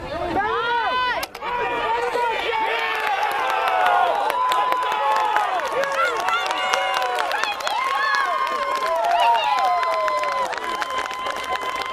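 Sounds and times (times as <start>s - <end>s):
crowd shouting: 0.4s - 11.9s.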